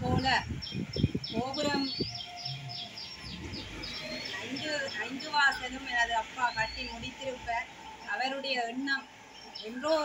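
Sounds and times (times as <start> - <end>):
bird chirping: 0.0 - 10.0.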